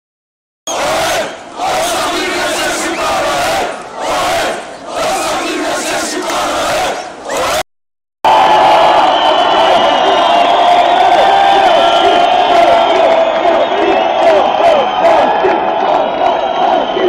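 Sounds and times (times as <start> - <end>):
crowd chanting in unison: 0.7 - 7.6, 8.4 - 17.0.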